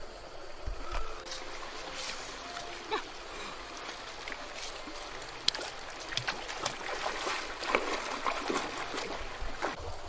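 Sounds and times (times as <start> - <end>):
stream rushing: 0.0 - 10.0
feet splashing in river: 0.7 - 9.8.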